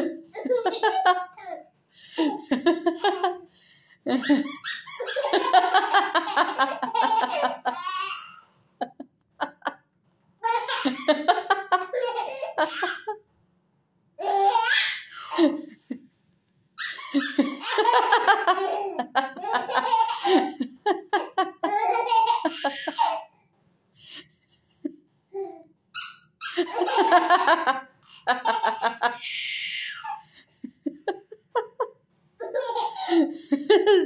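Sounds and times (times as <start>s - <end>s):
baby laughing: 0.0s - 3.4s, 4.1s - 8.5s, 10.4s - 13.2s, 14.2s - 15.7s, 16.8s - 23.3s, 26.4s - 30.3s, 32.4s - 33.4s.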